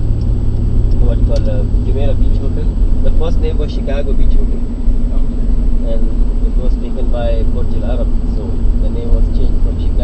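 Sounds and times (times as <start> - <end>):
car cabin rumble: 0.0 - 10.0
voices talking indistinctly: 0.9 - 10.0.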